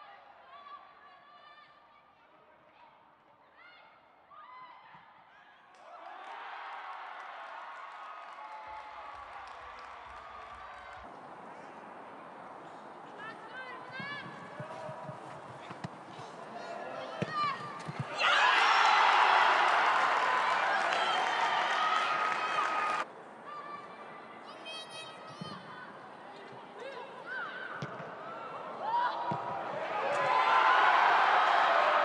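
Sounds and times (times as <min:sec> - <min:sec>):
stadium ambience: 0:00.0 - 0:32.0.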